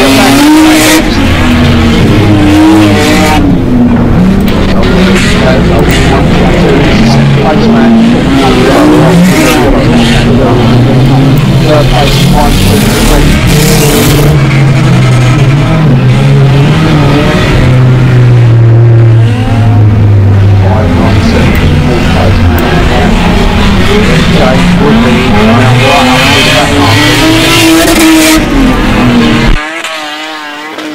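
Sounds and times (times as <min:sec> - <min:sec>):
race car engines revving: 0:00.0 - 0:30.9.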